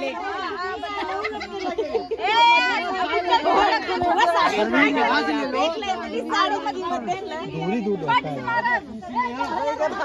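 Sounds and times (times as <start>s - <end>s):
chatter of several voices: 0.0s - 10.0s.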